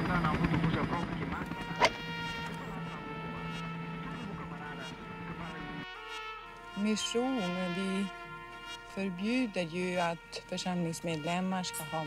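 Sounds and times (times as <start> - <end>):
steady buzzing hum: 0.0 - 12.0.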